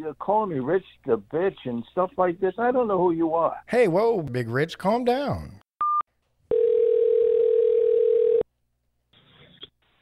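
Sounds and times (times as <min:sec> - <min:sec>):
telephone ringback tone: 0:05.8 - 0:08.4
faint phone line noise: 0:06.5 - 0:08.4.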